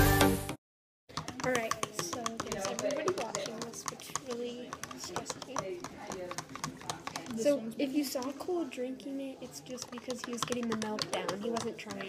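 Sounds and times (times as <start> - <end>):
rapid light clicks and taps: 1.1 - 7.4, 9.7 - 12.0
quiet talking: 1.3 - 12.0.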